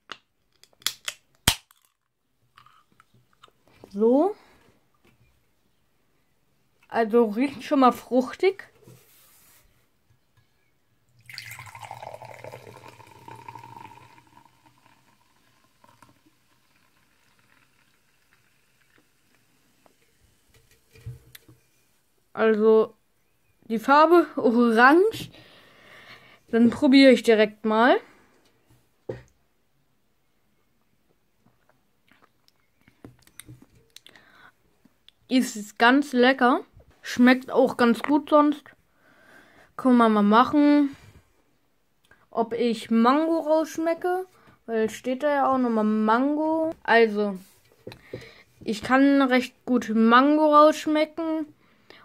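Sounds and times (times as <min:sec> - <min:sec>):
drink pouring into a glass: 0:11.2 - 0:21.1.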